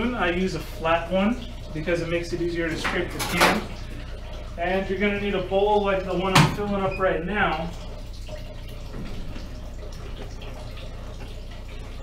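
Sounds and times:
tap water running into a bowl: 0.0s - 12.0s.

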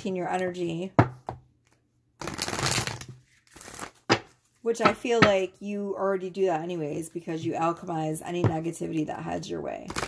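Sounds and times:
cards being shuffled: 1.7s - 4.5s.

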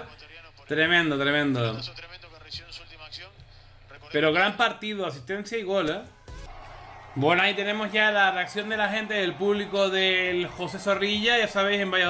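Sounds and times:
faint man's commentary: 0.0s - 6.1s.

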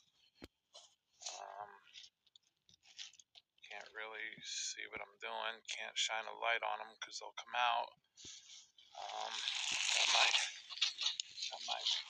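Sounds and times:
faint clicks and rustles: 0.0s - 4.0s, 9.8s - 12.0s.

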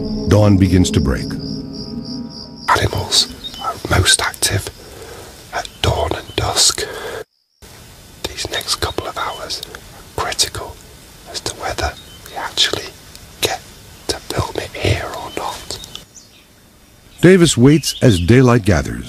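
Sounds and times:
person whispering: 2.7s - 7.2s, 8.2s - 15.9s.

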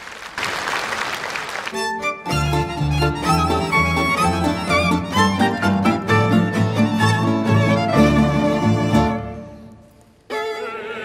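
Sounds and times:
orchestra playing sustained notes: 1.8s - 11.0s.

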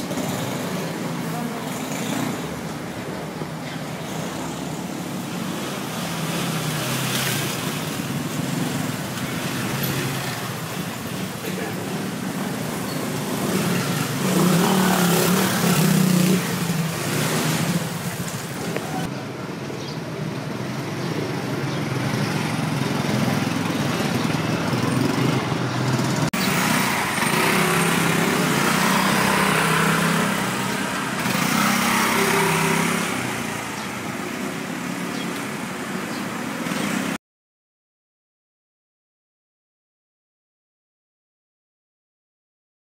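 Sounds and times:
scooters and motorcycles passing: 0.0s - 37.2s.

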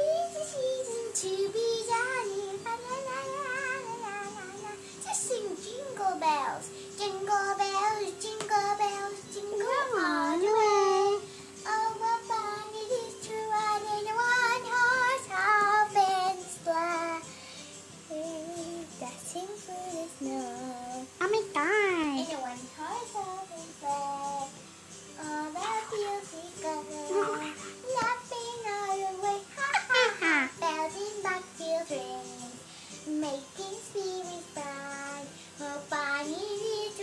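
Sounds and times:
child singing: 0.0s - 17.3s, 18.1s - 24.5s, 25.2s - 37.0s
background music with held note: 0.0s - 37.0s.

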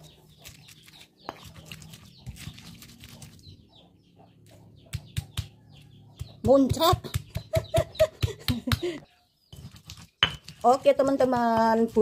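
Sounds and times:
stone pestle grinding in mortar: 9.5s - 12.0s
stone knocking on stone: 10.2s - 10.6s.

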